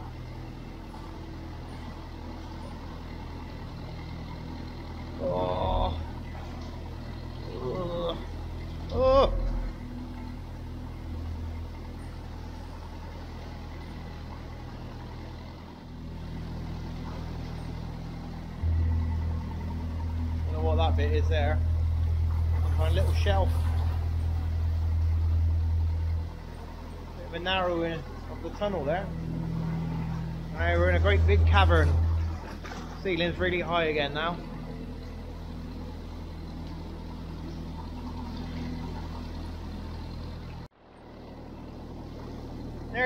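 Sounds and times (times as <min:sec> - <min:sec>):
boat engine droning in a tunnel: 0:00.0 - 0:43.0.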